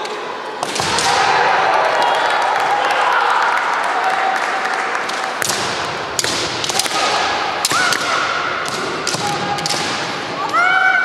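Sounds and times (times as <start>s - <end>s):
bamboo swords striking: 5.4s - 10.2s.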